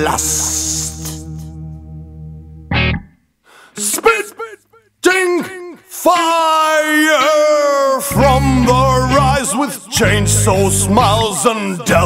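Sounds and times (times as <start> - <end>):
guitar notes sliding down: 0.1 - 3.2.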